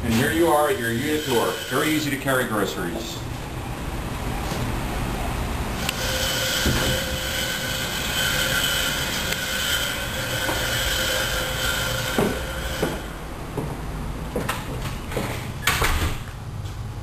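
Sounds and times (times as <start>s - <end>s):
high-pitched squeal: 0.0s - 2.9s, 5.8s - 13.4s.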